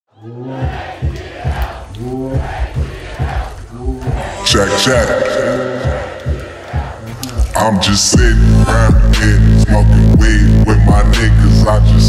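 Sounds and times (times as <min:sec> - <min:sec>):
live hip-hop beat: 0:00.6 - 0:12.0
concert crowd shouting: 0:04.2 - 0:07.2.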